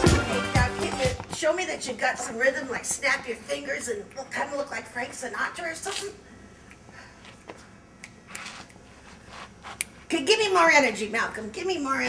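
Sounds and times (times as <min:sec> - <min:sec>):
faint finger snaps: 0:08.0 - 0:08.5.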